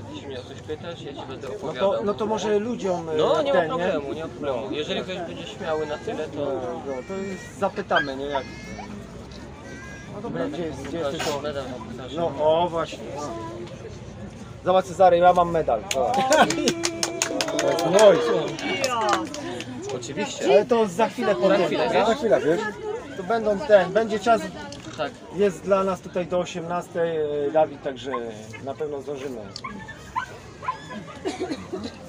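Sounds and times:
voices: 0:00.0 - 0:32.0
dog whimpering and yipping: 0:07.9 - 0:08.2.

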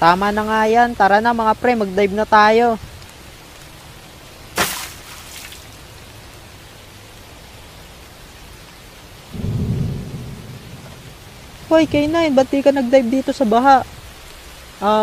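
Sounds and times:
rain hiss: 0:00.0 - 0:15.0
splash into water: 0:04.5 - 0:05.9
low rumble of thunder: 0:09.3 - 0:12.6.

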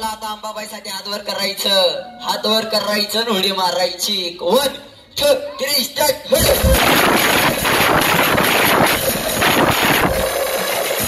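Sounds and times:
crowd noise: 0:00.0 - 0:11.0
distorted procession music: 0:06.3 - 0:11.0.

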